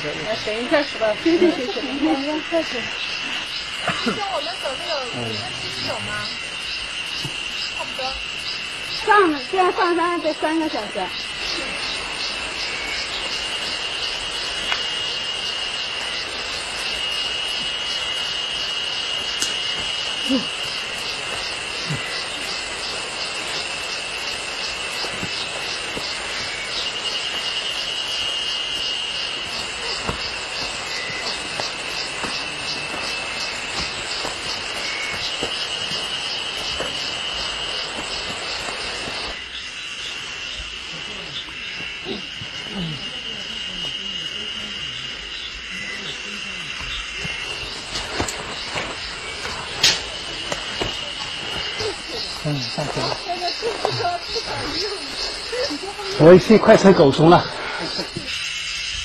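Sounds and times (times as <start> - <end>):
insects chirring: 0.0 - 59.0.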